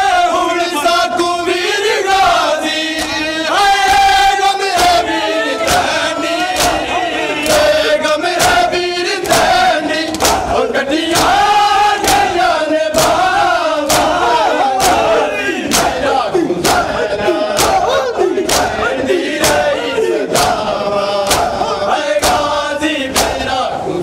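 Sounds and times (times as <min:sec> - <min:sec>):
men chanting a lament: 0:00.0 - 0:24.0
hands slapping chests in unison: 0:02.9 - 0:03.3, 0:03.9 - 0:23.7.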